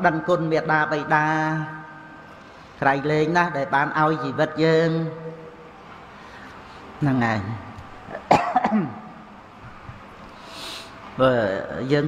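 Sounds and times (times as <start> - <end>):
man coughing: 8.1 - 9.1.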